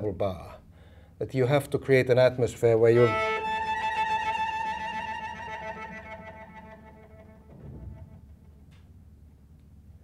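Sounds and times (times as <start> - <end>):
cello bowing high note: 2.9 - 8.2.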